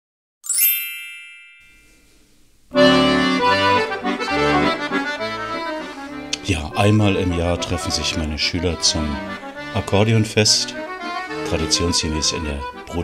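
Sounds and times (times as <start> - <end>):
bright chime: 0.4 - 2.4
accordion music: 2.7 - 13.0.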